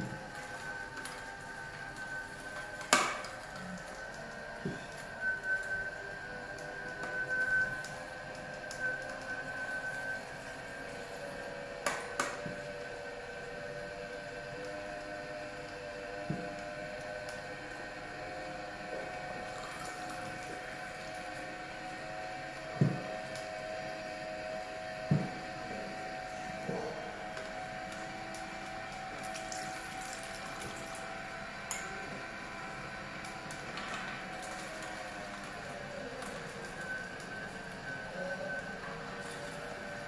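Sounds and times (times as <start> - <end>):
juicer motor humming: 0.0 - 40.0.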